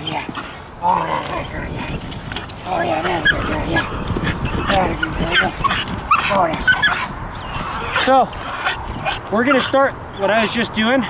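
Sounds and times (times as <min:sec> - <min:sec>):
puppy whining and yipping: 0:03.0 - 0:10.6.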